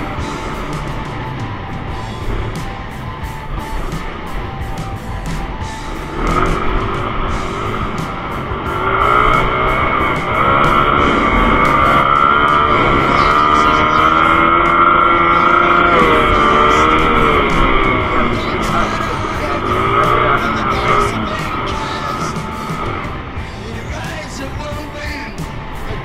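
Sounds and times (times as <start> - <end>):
dirt bike engine: 0.0 - 26.0
guitar background music: 0.0 - 26.0.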